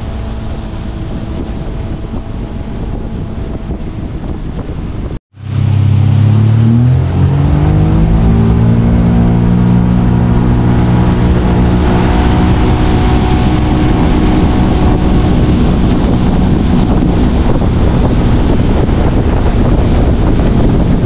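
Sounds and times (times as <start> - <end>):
boat engine accelerating: 0.0 - 21.0
wind and water rush: 0.0 - 21.0.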